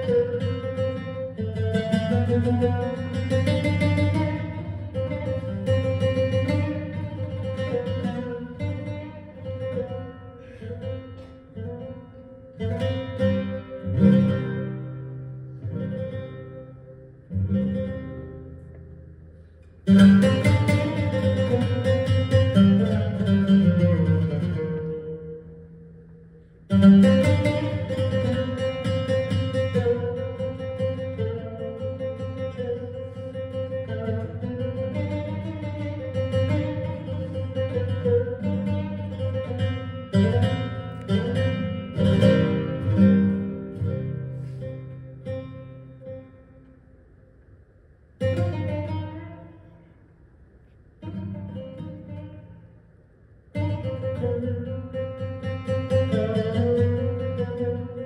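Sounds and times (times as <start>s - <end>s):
oud plucked notes: 0.0s - 47.2s, 48.2s - 50.1s, 53.5s - 58.0s.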